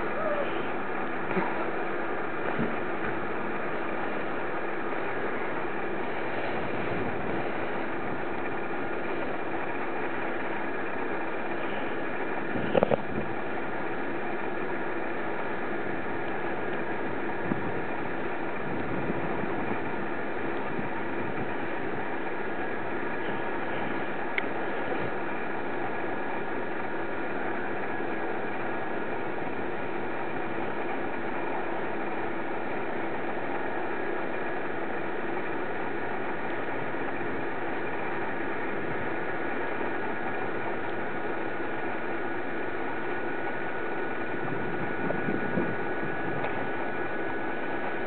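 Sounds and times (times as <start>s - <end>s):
steady whirring hum: 0.0s - 48.0s.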